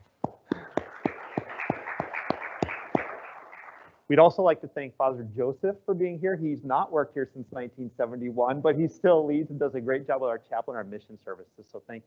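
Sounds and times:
loud close claps: 0.0 - 3.9
people applauding: 0.4 - 3.9.

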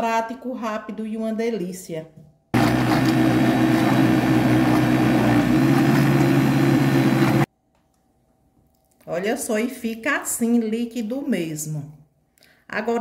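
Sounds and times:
blender motor running: 2.6 - 7.5.

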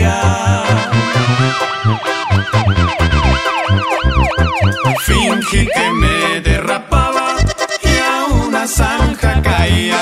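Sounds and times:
pulsing bass beat: 0.0 - 9.8
band music: 0.0 - 10.0
siren-like wail: 1.4 - 6.7.

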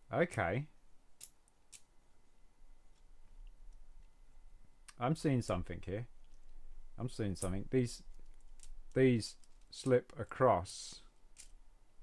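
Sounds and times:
plastic parts clicking: 11.3 - 11.6.

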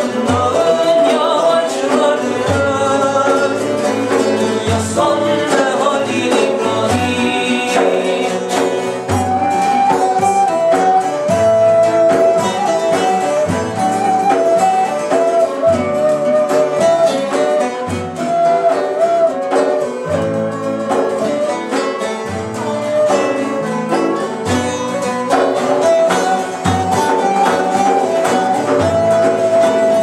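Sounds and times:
plucked lute: 0.0 - 30.0
flute sustained melody: 8.5 - 30.0.

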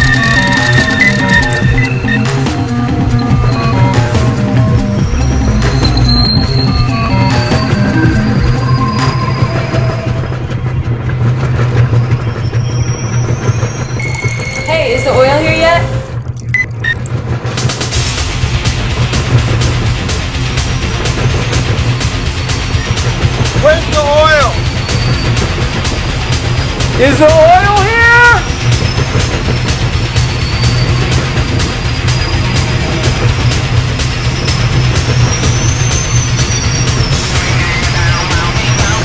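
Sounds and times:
background music with beat: 0.0 - 10.4, 16.6 - 39.0
thin high tones: 13.2 - 16.5
man shouting a call: 23.6 - 24.6.

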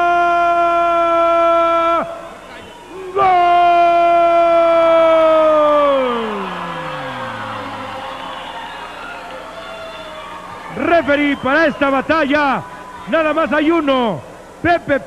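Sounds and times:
announcer's long sung-out call: 0.0 - 15.0
crowd: 0.0 - 15.0.

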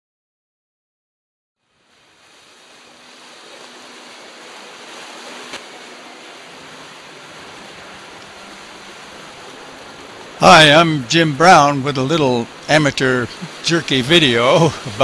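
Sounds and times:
wind and water rushing: 1.6 - 15.0.

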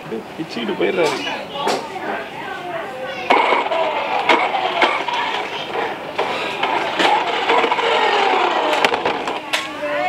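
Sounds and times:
toy car motor whirring: 3.3 - 9.6.

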